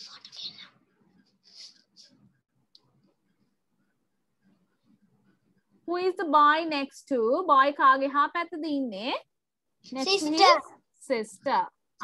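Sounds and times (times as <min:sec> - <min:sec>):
faint whispering: 0:00.0 - 0:02.2.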